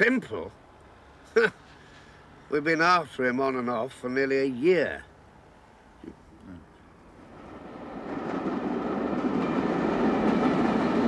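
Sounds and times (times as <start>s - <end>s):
passenger train rumbling past: 6.9s - 11.0s.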